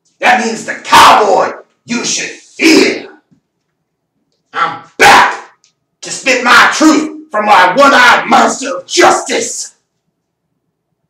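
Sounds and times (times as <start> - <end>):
man imitating dog barks: 4.6 - 5.5.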